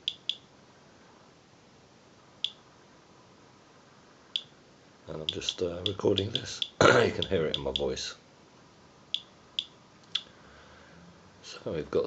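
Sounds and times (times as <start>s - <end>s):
geiger counter clicks: 0.0s - 0.4s, 5.2s - 7.9s.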